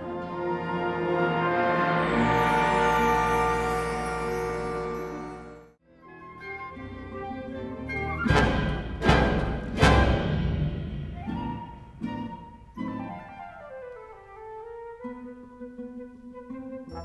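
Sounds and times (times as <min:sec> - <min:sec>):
chamber orchestra playing: 0:00.0 - 0:17.0.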